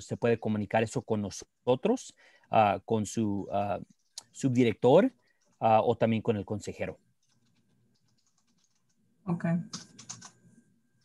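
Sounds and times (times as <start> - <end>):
keyboard typing clicks: 7.2 - 9.0, 9.7 - 10.4.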